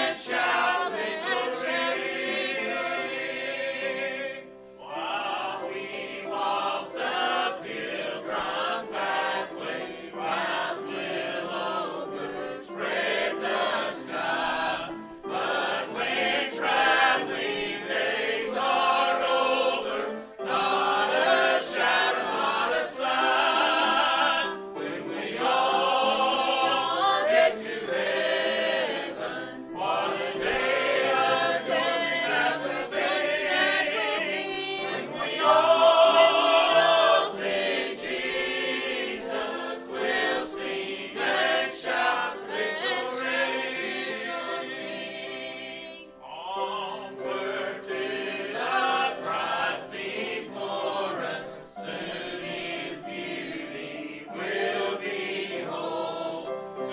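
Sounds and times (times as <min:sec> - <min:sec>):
church choir singing: 0:00.0 - 0:56.9.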